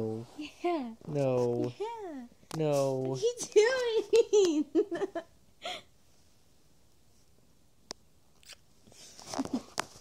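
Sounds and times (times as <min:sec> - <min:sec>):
soft lip smacks kissing: 0:08.4 - 0:08.6.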